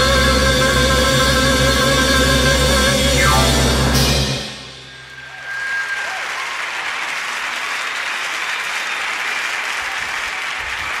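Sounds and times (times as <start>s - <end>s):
audience applause: 5.2s - 11.0s.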